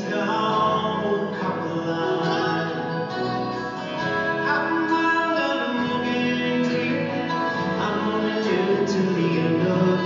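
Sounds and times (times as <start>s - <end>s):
live acoustic band music: 0.0s - 10.0s
plucked guitar: 0.0s - 10.0s.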